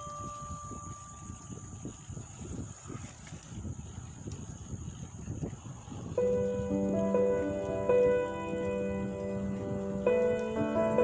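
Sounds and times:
chime-like note: 0.0s - 1.6s
wind buffeting microphone: 0.0s - 11.0s.

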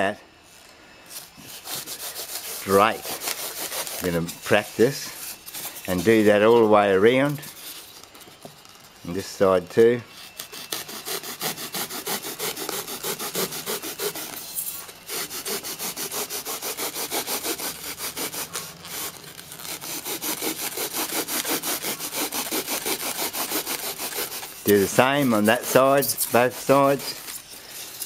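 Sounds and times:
hacksaw blade sawing foam: 1.3s - 6.7s, 10.2s - 28.0s.

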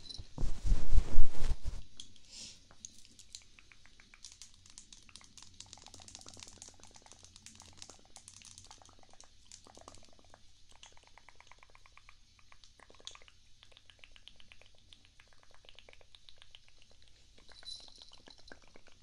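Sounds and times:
makeup brush bristle strokes: 0.4s - 1.8s.

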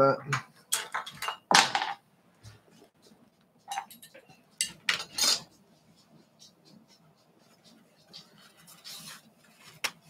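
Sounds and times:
hard objects knocking and clicking: 0.3s - 2.0s.

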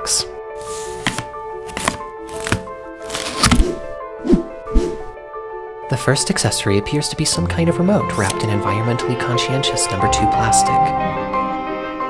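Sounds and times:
orchestral background music: 0.0s - 12.0s
knife cutting packing tape: 0.9s - 3.9s
sharp cuts and thuds: 1.8s - 5.1s.

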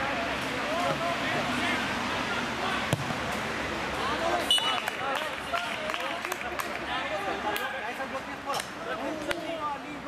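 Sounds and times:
footballers calling out: 0.0s - 10.0s.

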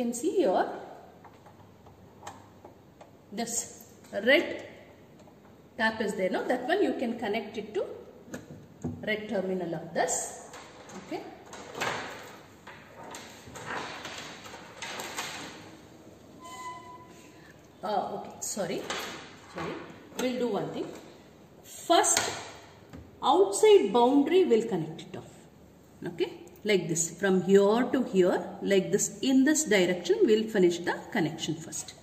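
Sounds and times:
wires rustling and scraping: 10.4s - 17.4s.

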